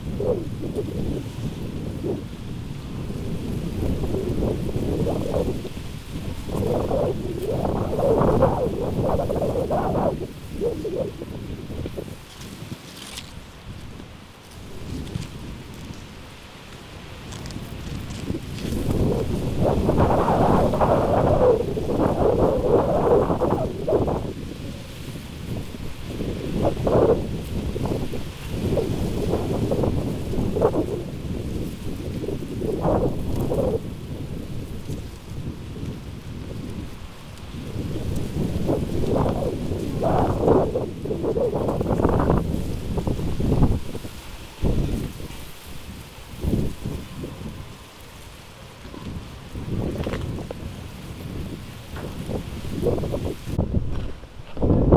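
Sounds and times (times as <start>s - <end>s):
strong wind gusting on microphone: 0.0s - 54.9s.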